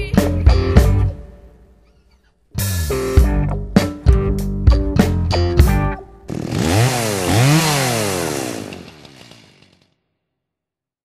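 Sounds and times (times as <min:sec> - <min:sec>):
chainsaw engine revving: 0:06.3 - 0:10.0.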